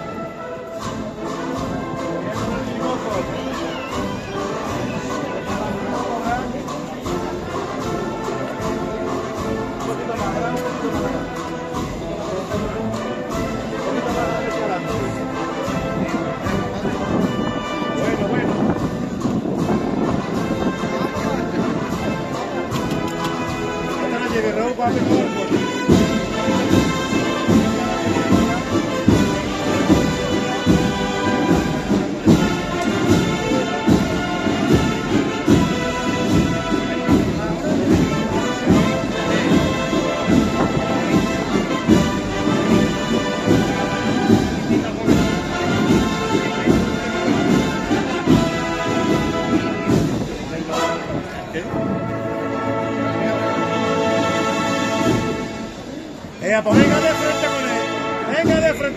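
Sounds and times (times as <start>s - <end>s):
brass band playing a march: 0.0s - 58.9s
steady drum beat: 0.0s - 58.9s.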